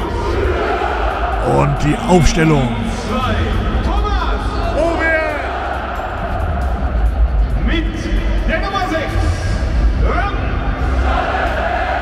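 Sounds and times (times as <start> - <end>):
stadium crowd noise: 0.0 - 8.6
announcer over loudspeaker: 1.4 - 3.2.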